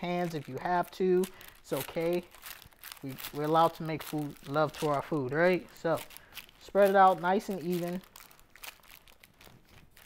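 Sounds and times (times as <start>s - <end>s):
parchment paper crinkling: 0.0s - 10.0s
sticky granola crunching: 0.0s - 10.0s.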